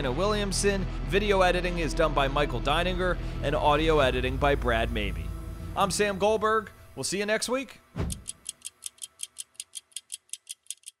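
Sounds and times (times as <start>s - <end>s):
faint sustained music bed: 0.0s - 7.9s
clock ticking: 8.1s - 11.0s.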